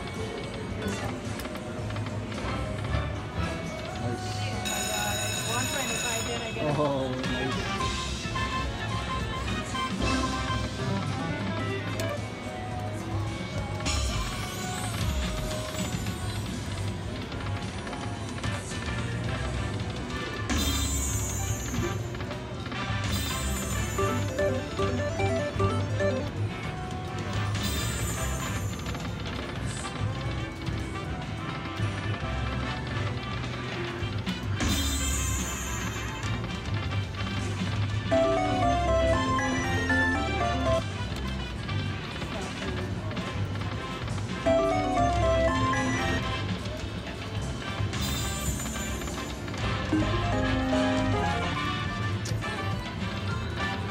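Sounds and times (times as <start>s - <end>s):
slot machine music and chimes: 0.0s - 53.9s
casino background voices: 0.3s - 18.9s, 20.7s - 34.0s, 38.1s - 53.9s
quick bright melodic notes: 23.4s - 26.3s, 38.1s - 40.8s, 44.5s - 46.4s, 48.3s - 51.6s.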